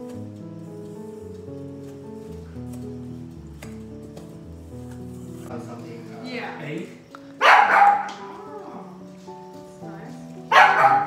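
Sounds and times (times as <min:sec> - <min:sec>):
background music: 0:00.0 - 0:11.0
dog barking: 0:07.4 - 0:08.6, 0:10.5 - 0:11.0.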